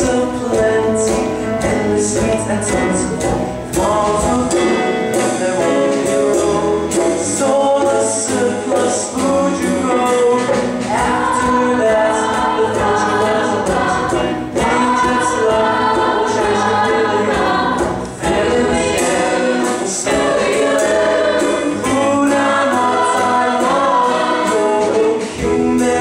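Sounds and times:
group of voices singing: 0.0s - 26.0s
instrumental accompaniment: 0.0s - 26.0s.

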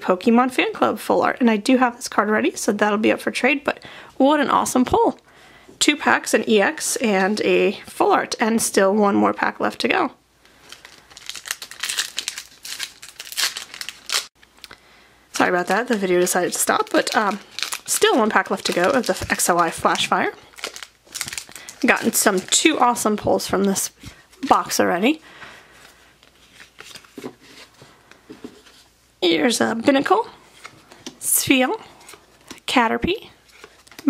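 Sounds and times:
foil wrapper crinkling: 10.4s - 14.8s, 15.4s - 24.8s, 25.8s - 27.7s, 33.4s - 34.0s.

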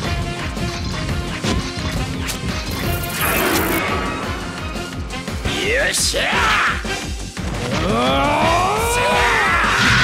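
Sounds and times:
action background music: 0.0s - 10.0s
sharp hit sound effects: 2.8s - 5.4s
loud crash: 3.2s - 5.3s.

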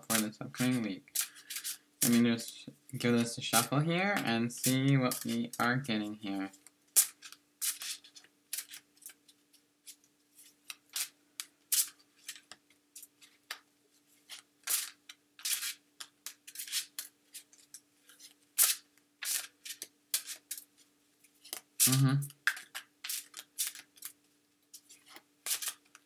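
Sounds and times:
cards being shuffled by hand: 0.0s - 13.6s, 14.2s - 26.0s.

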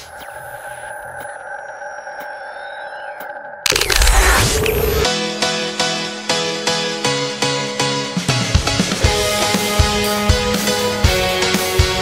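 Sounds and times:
synthetic drone: 0.0s - 5.2s.

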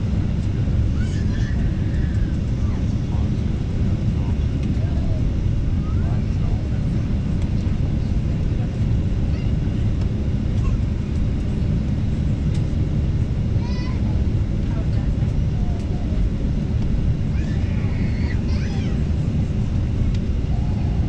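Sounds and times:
airliner engine and airflow rumble: 0.0s - 21.0s
faint passenger voices: 0.1s - 21.0s.

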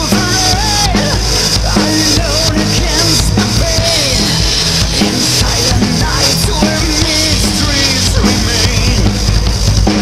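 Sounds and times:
symphonic metal song: 0.0s - 10.0s.

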